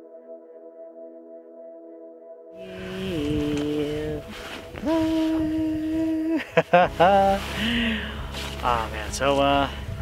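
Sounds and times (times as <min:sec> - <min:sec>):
person holding a long note: 0:02.6 - 0:06.4
person laughing: 0:06.2 - 0:08.0.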